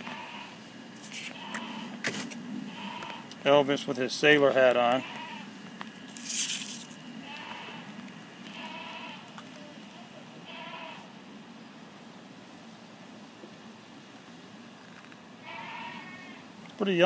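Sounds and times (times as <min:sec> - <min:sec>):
faint bleating animal calls: 0:00.0 - 0:00.6, 0:01.2 - 0:02.0, 0:02.6 - 0:03.4, 0:04.8 - 0:05.6, 0:07.2 - 0:11.2, 0:15.4 - 0:16.6
brief rustle: 0:06.1 - 0:07.0.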